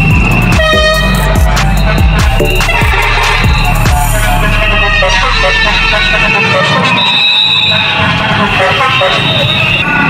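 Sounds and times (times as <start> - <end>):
music with deep bass: 0.0 - 8.6
vehicle noise: 0.0 - 10.0.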